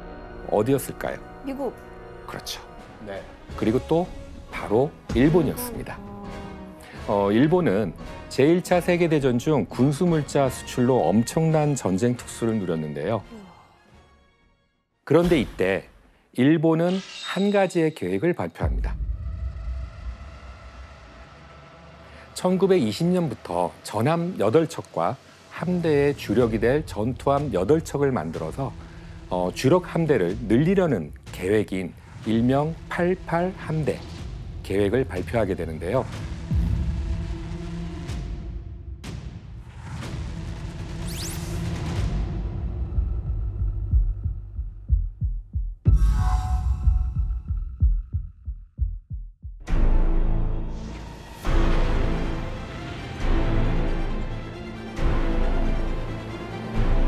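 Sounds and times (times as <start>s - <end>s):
tense music with heartbeat pulse: 18.6s - 57.0s
deep low rumble: 18.7s - 22.1s.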